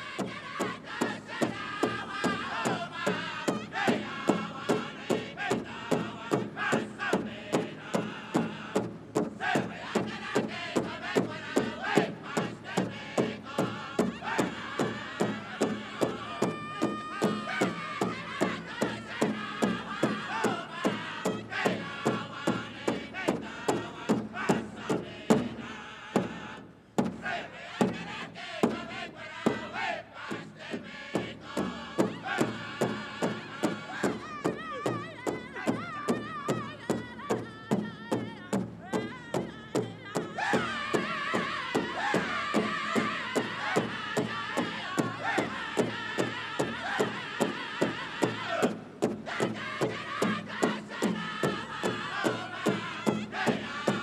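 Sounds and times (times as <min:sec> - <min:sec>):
group singing in unison: 0:00.0 - 0:54.0
large drum steady beat: 0:00.0 - 0:54.0.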